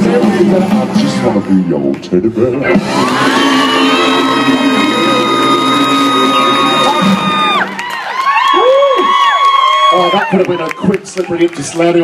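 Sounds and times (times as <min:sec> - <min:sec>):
audience whooping and cheering: 0:02.7 - 0:12.0.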